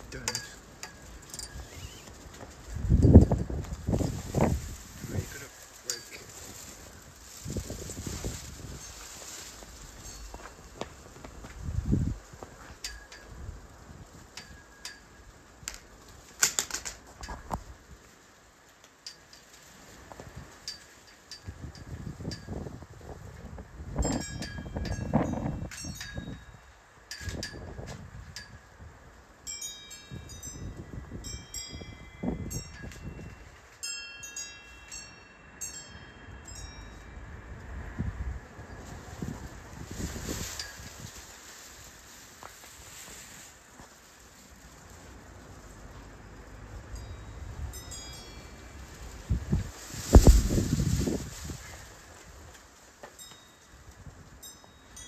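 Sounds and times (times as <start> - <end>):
wind buffeting microphone: 0.0 - 5.6, 6.2 - 14.6, 21.3 - 29.2, 30.1 - 33.7, 35.6 - 42.2, 48.7 - 52.5
light metallic clinks: 0.1 - 2.0, 12.6 - 13.4, 14.3 - 15.8, 19.0 - 19.6, 20.6 - 22.6, 29.5 - 37.3, 46.2 - 48.8, 53.1 - 53.8
chime-like rings: 29.4 - 37.5, 46.9 - 48.9, 53.2 - 53.8, 54.4 - 55.0.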